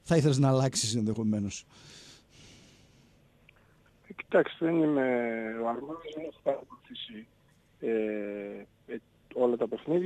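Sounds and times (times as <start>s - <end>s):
faint breath: 1.7s - 3.9s.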